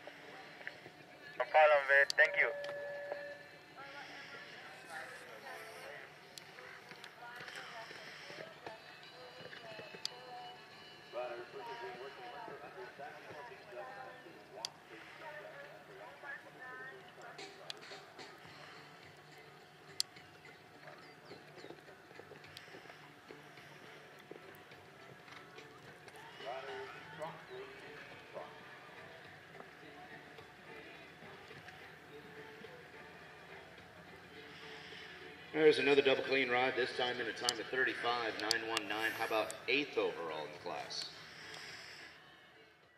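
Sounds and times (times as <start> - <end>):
faint indistinct voices: 0.0 - 42.9.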